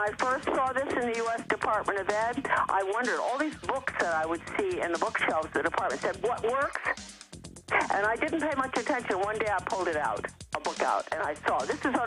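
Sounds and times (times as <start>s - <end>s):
person speaking: 0.0s - 7.0s, 7.7s - 12.0s
music with fast beat: 0.0s - 12.0s.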